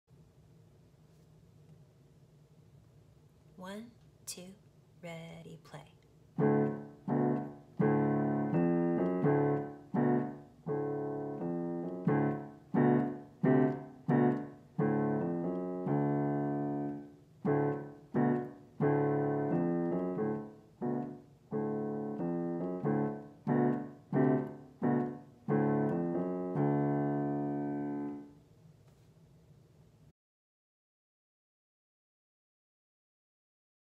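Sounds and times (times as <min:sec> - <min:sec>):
digital piano playing chords: 0:06.4 - 0:28.3.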